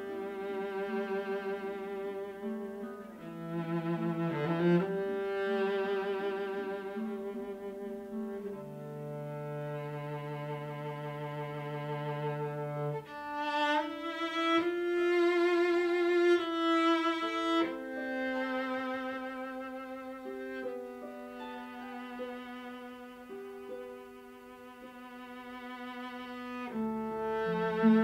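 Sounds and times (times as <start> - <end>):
string ensemble playing held chords: 0.0 - 28.0.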